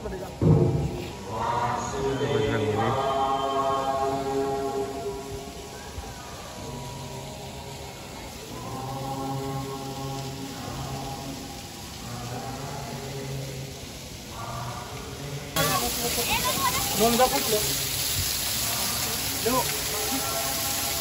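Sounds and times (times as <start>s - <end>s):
faint falling water: 0.0s - 21.0s
chant-like singing: 0.4s - 21.0s.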